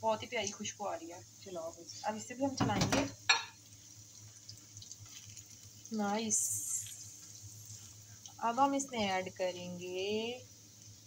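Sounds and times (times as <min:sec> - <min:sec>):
soft crackles while stirring: 0:00.0 - 0:02.6, 0:03.2 - 0:11.0
spices sizzling in hot oil: 0:00.0 - 0:11.0.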